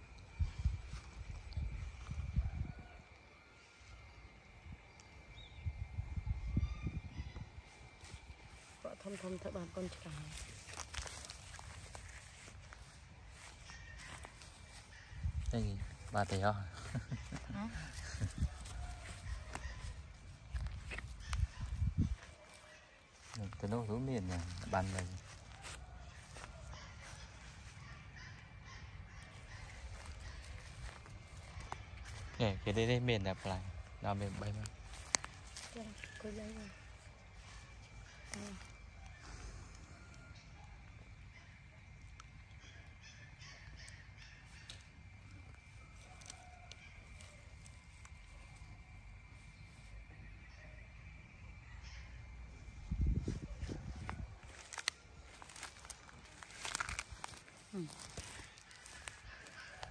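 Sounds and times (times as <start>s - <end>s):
wind on microphone: 0.3s - 3.0s, 5.6s - 8.5s, 17.9s - 22.3s, 52.6s - 54.5s
distant bird calls: 3.3s - 32.7s, 33.4s - 59.9s
branches snapping and rustling: 10.0s - 16.3s, 34.3s - 38.8s, 44.5s - 48.7s, 53.8s - 59.9s.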